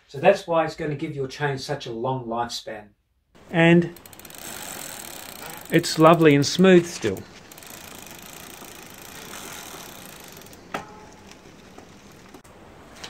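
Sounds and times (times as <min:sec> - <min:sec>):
bicycle chain whirring: 0:03.4 - 0:12.4.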